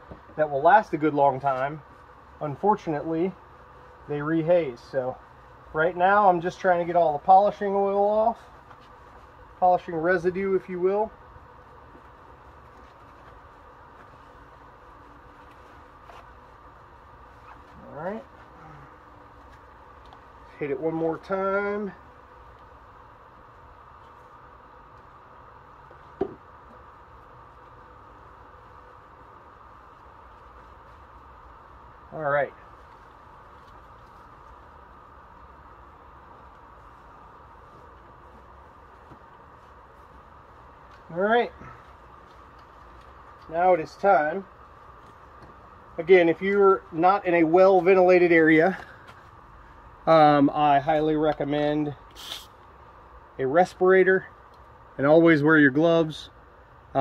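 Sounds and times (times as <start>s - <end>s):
faint steady background noise: 0.0s - 57.0s
low background noise: 0.0s - 57.0s
towel rubbing and squeaking on plastic: 17.3s - 18.6s.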